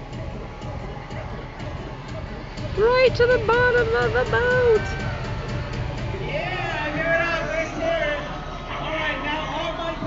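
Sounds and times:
faint music: 0:00.0 - 0:10.0.

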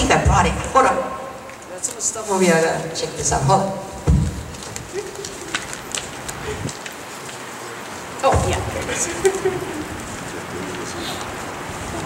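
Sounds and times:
paper rustling: 0:01.8 - 0:12.0
low thump: 0:04.0 - 0:04.5, 0:08.3 - 0:08.9.

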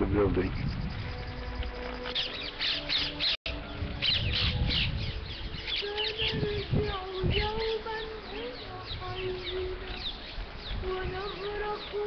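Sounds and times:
wind rumble on microphone: 0:00.0 - 0:02.6, 0:03.5 - 0:12.0
bats squeaking: 0:00.4 - 0:03.4.

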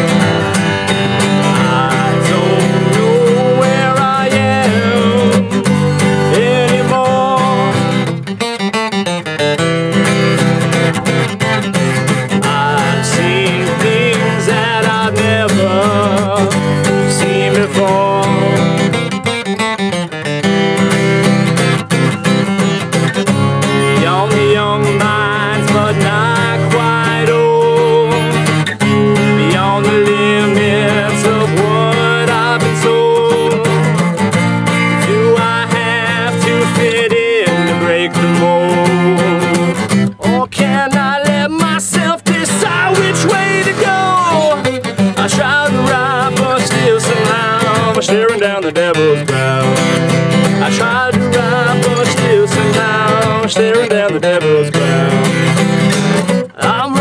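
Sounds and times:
acoustic guitar strummed: 0:00.0 - 0:57.0
man singing wordlessly: 0:00.0 - 0:57.0.

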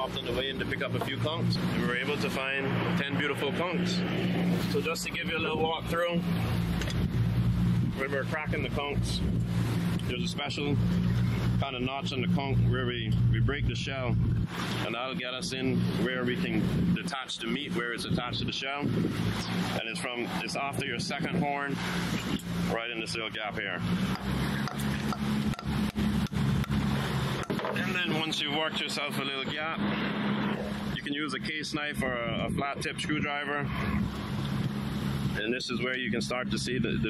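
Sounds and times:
motorboat engine running: 0:00.0 - 0:37.0
water rushing past hull: 0:00.0 - 0:37.0
wind rushing: 0:14.0 - 0:14.8.

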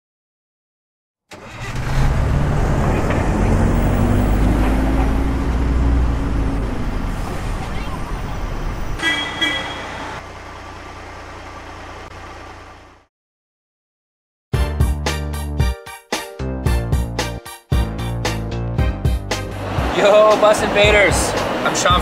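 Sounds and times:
bus engine running: 0:01.4 - 0:13.1, 0:19.1 - 0:22.0
horn toot: 0:09.0 - 0:10.2.

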